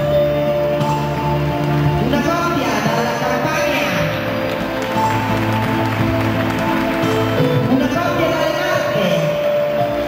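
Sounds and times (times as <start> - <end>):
instrumental ballroom dance music: 0.0 - 10.0.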